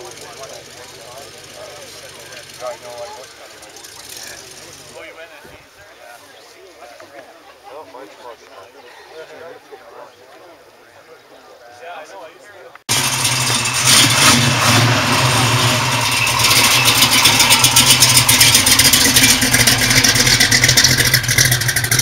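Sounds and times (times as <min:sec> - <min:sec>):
car engine revving with clatter: 0:00.0 - 0:05.0, 0:12.9 - 0:22.0.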